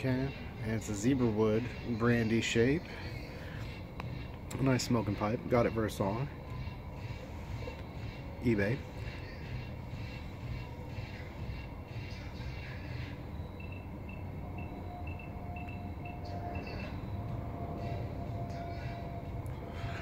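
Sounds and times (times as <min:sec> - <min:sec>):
faint steady tone: 0:00.0 - 0:20.0
low outdoor rumble: 0:00.0 - 0:20.0
faint high beeps: 0:12.1 - 0:19.4.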